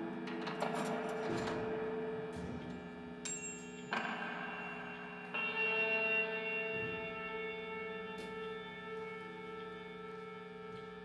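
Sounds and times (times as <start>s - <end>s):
ringing metallic tones: 0.6s - 9.0s.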